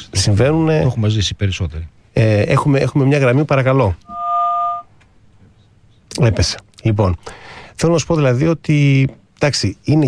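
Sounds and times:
telephone dual-tone beep: 0:04.1 - 0:04.9.

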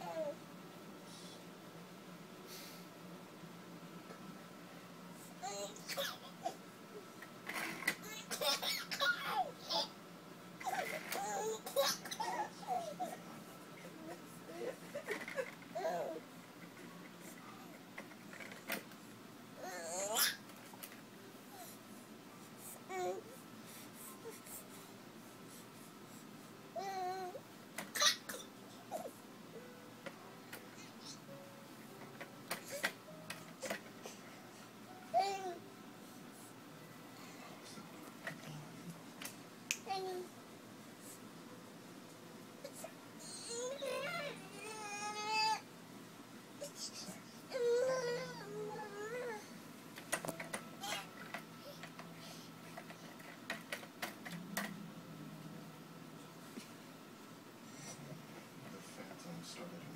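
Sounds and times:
soft baby sound: 0:00.0 - 0:00.5, 0:05.3 - 0:06.6, 0:10.6 - 0:16.2, 0:19.6 - 0:20.5, 0:22.4 - 0:24.8, 0:26.8 - 0:29.7, 0:33.6 - 0:35.6, 0:39.7 - 0:40.4, 0:42.6 - 0:45.6, 0:46.6 - 0:49.5
baby crying: 0:19.6 - 0:20.4, 0:42.7 - 0:45.6, 0:46.6 - 0:49.5.

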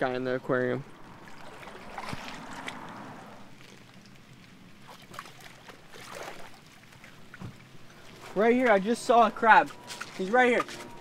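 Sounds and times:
wind and water wash: 0:00.0 - 0:11.0.

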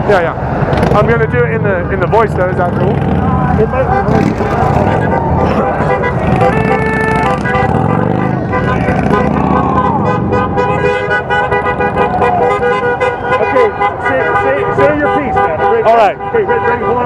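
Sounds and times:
people's voices: 0:00.0 - 0:17.0
road traffic: 0:00.0 - 0:17.0
car horns honking: 0:02.0 - 0:17.0.

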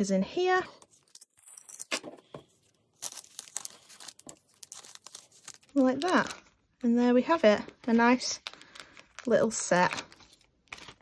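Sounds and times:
plastic sleeve crinkling: 0:00.8 - 0:11.0.

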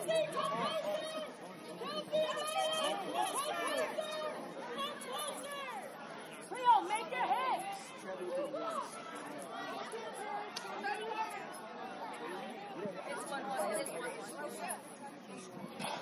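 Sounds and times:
voices calling and shouting: 0:00.0 - 0:16.0.

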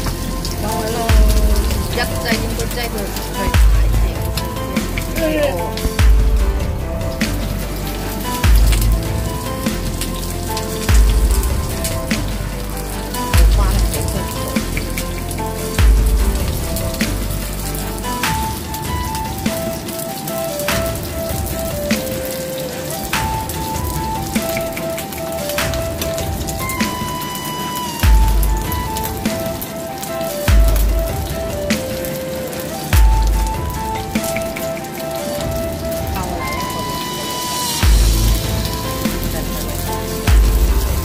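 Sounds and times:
deep bass hit: 0:00.0 - 0:18.1, 0:28.0 - 0:29.2, 0:30.5 - 0:31.5, 0:33.0 - 0:33.9, 0:37.8 - 0:41.0
background music with beat: 0:00.0 - 0:41.0.

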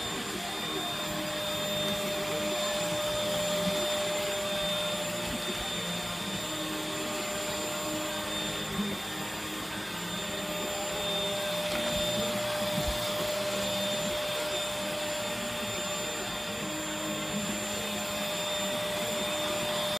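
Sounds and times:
stick vacuum running: 0:00.0 - 0:19.9.

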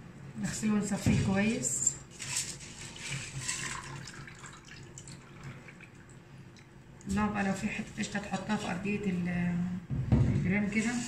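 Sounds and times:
water and rice pouring: 0:02.1 - 0:06.0.

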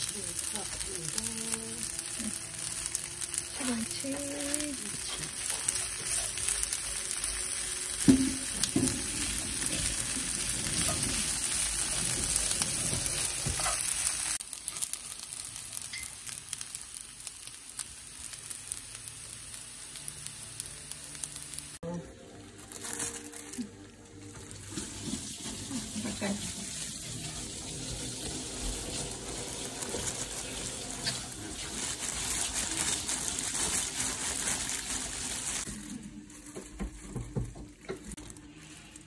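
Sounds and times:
food sizzling in a pan: 0:00.0 - 0:39.0.

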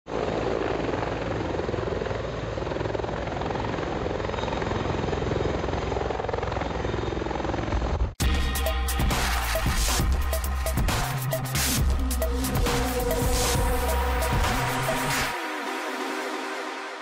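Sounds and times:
helicopter rotor and turbine: 0:00.1 - 0:16.8.

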